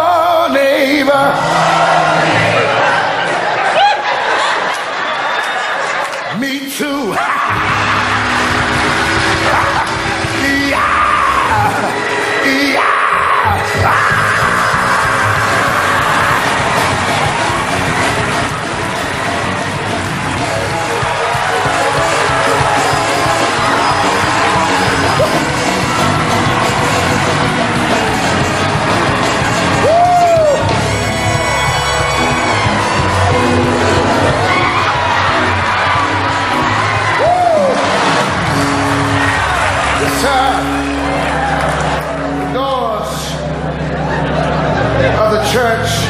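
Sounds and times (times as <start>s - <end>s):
congregation cheering and shouting: 0.0s - 46.0s
upbeat gospel church music: 0.0s - 46.0s
held keyboard chords: 7.5s - 46.0s.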